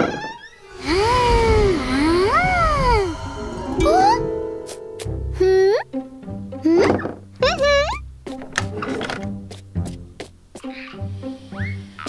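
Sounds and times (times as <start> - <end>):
low rumble: 0.6 - 6.6.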